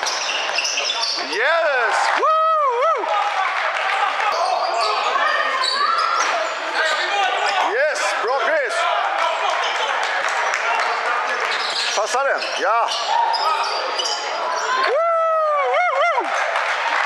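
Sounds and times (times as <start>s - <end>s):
sneakers squeaking: 0.0s - 1.4s, 3.8s - 14.9s
voices echoing in hall: 0.0s - 17.0s.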